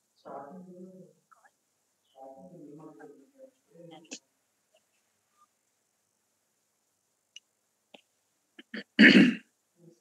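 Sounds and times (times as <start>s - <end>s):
person clearing throat: 8.6s - 9.5s.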